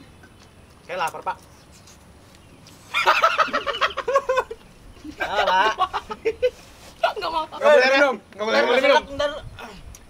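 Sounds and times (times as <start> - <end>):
men laughing loudly: 2.9 - 7.3.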